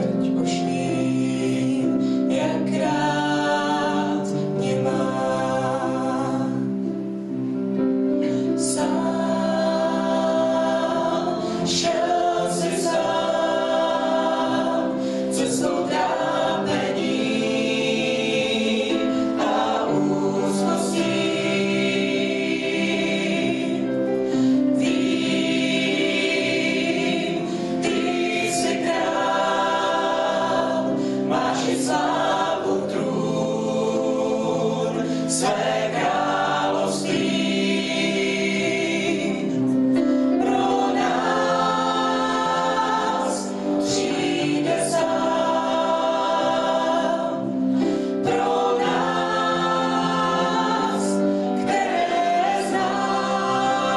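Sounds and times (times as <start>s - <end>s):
mixed choir singing: 0.0s - 53.9s.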